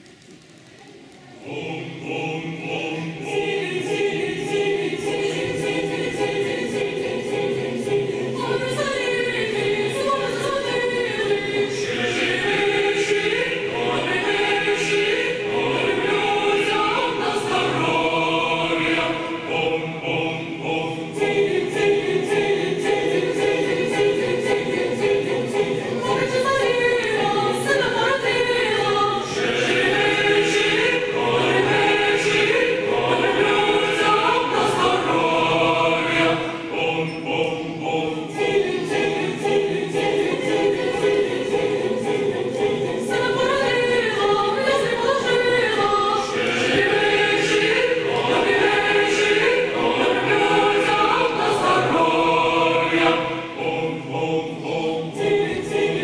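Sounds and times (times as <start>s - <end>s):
mixed choir singing unaccompanied: 1.2s - 56.0s.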